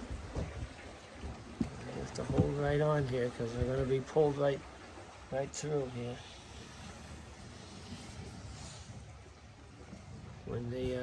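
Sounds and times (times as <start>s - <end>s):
water moving in canal lock: 0.0s - 11.0s.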